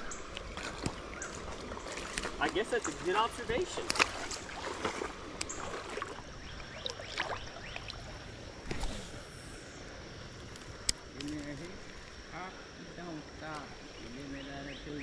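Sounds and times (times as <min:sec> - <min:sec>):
fishing line swish: 0:08.6 - 0:09.6.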